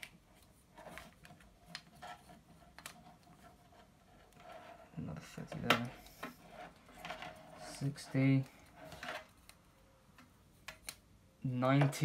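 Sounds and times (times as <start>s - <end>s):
objects scraping on desk: 6.0s - 9.4s.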